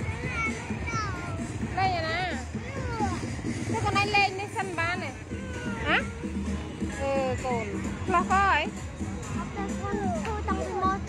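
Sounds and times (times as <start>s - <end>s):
children and adults chattering: 0.0s - 11.0s.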